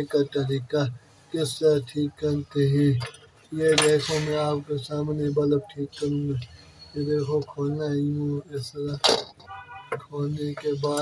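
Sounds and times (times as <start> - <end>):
man talking: 0.0 - 9.2, 10.0 - 11.0.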